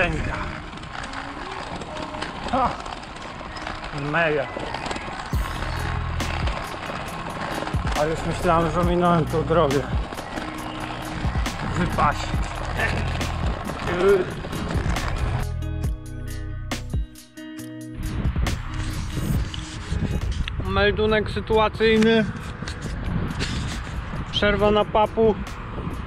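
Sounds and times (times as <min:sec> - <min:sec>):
wind buffeting microphone: 0:00.0 - 0:15.7, 0:18.0 - 0:26.0
music with bass and high ticks: 0:05.3 - 0:20.6.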